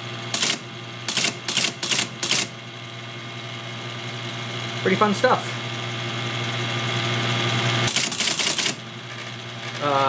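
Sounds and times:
teleprinter typing bursts: 0.3 - 2.6, 7.9 - 10.0.

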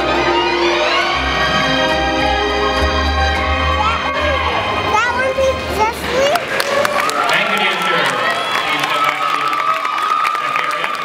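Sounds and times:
spectators cheering and shouting: 0.0 - 11.0
scattered clapping: 6.3 - 11.0.

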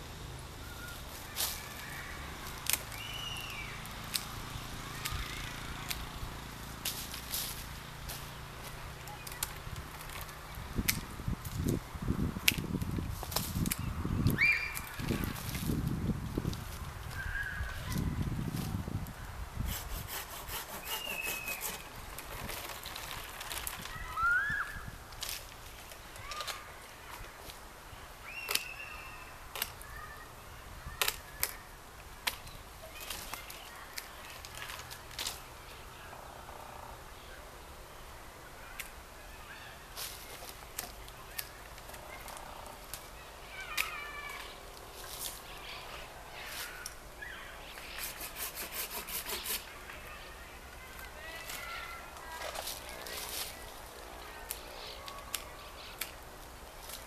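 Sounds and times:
birds calling: 0.0 - 6.6, 13.7 - 15.4, 20.7 - 22.1, 38.6 - 48.3
pruning shears snipping: 3.8 - 6.2, 12.4 - 15.8, 19.7 - 22.0, 28.4 - 28.8, 40.0 - 45.5, 47.7 - 49.7.

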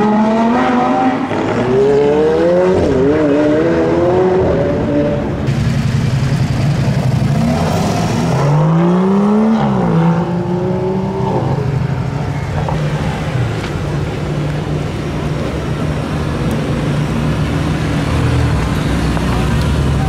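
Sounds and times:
sports car engines revving: 0.0 - 20.0.

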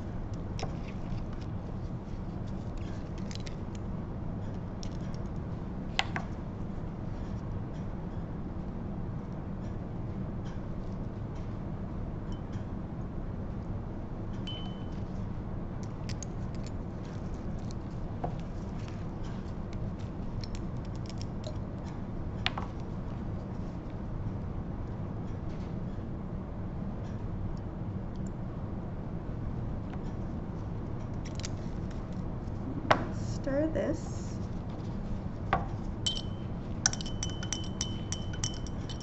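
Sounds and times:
low hum: 11.2 - 25.0, 27.6 - 39.0
ringing glass tap: 14.5 - 14.9, 36.1 - 39.0
glass bottles clicking and tapping: 36.1 - 39.0.

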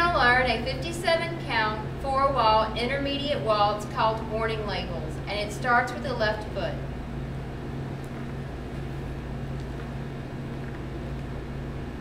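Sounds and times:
low hum with faint hiss: 0.0 - 12.0.

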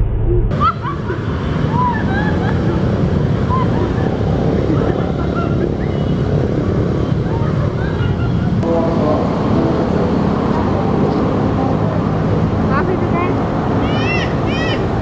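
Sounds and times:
road traffic: 0.0 - 15.0
voices: 0.5 - 15.0.

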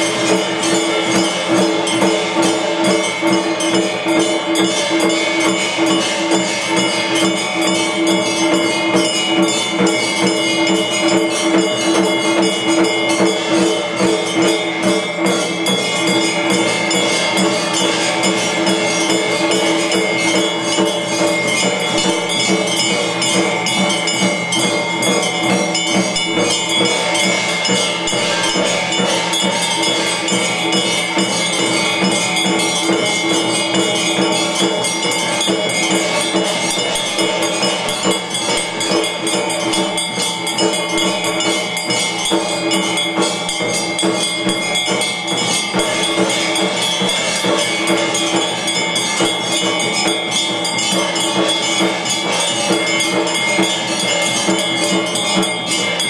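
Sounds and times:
bells and jingling percussion: 0.0 - 56.0.

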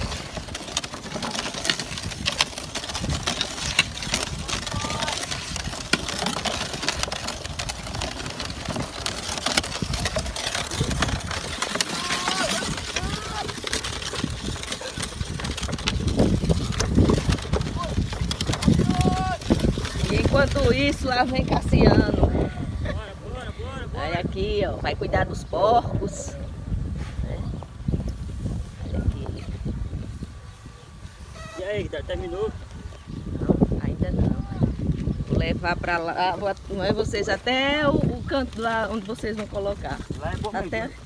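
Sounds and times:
wooden cart rattling and knocking: 0.0 - 22.9, 33.9 - 41.0
hooves clopping: 0.0 - 23.3, 34.0 - 41.0
wind rumble on microphone: 0.0 - 41.0.

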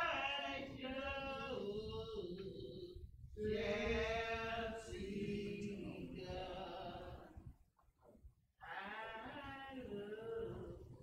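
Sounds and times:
unaccompanied singing voices: 0.0 - 7.6, 8.6 - 11.0.

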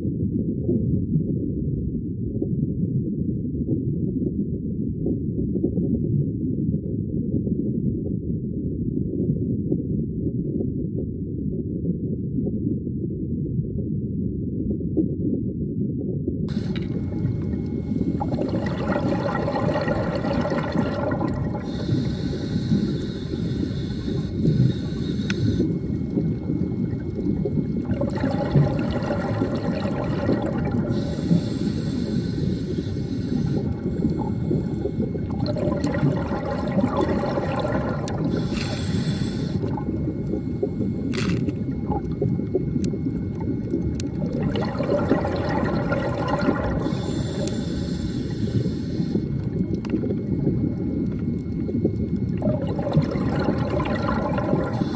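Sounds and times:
low underwater rumble: 0.0 - 54.9
bubbly gurgling exhalation: 16.5 - 54.9
regulator hiss: 21.6 - 27.0, 30.7 - 35.4, 37.2 - 41.6, 46.8 - 49.4.

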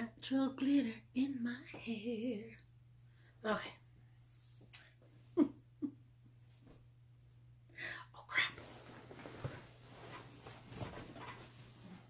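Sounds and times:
faint steady hum: 0.0 - 12.0
woman whispering: 7.8 - 8.6.

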